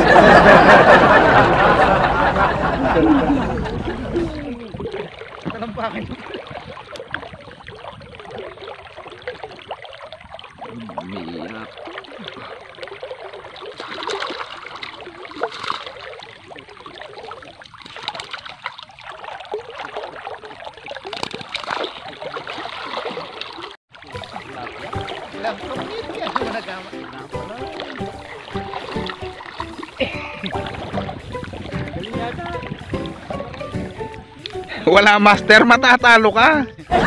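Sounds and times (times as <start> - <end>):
water sloshing and trickling: 0.0 - 37.0.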